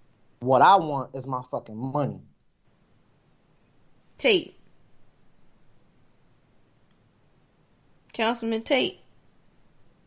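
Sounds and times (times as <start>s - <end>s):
faint room hiss: 0.0s - 10.0s
faint click: 6.8s - 7.1s.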